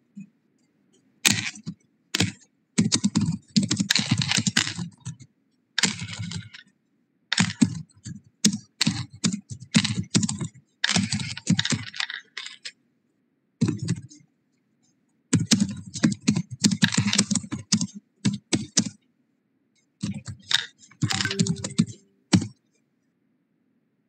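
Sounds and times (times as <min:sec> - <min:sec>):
computer keyboard typing: 0:15.4 - 0:19.0, 0:20.0 - 0:22.6.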